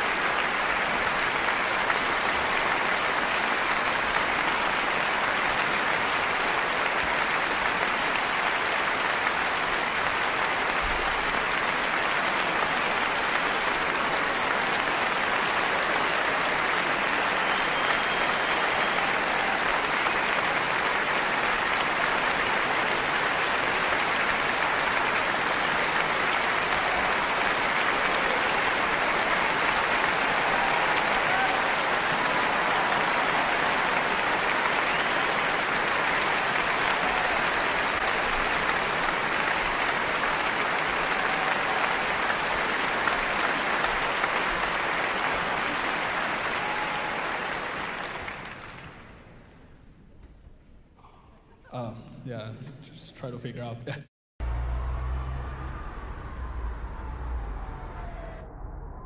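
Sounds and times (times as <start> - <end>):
audience applauding: 0.0 - 49.6.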